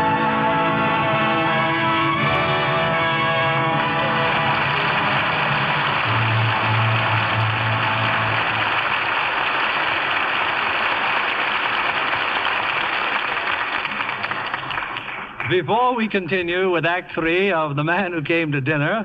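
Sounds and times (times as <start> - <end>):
orchestral music: 0.0 - 9.8
audience applauding: 0.7 - 15.8.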